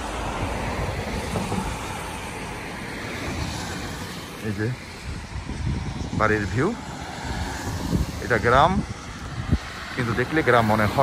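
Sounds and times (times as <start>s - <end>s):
car passing on wet road: 0.0s - 11.0s.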